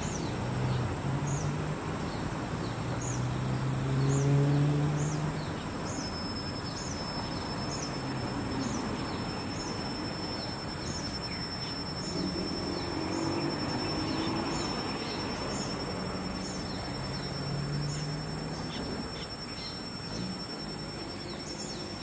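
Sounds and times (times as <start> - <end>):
insect chirping: 0.0 - 22.0
insects buzzing: 0.0 - 22.0
rushing background noise: 0.0 - 22.0.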